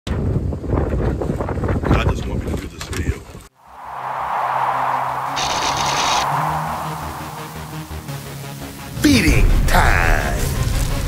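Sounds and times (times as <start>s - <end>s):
whoosh: 3.6s - 8.7s
low held notes: 3.7s - 8.7s.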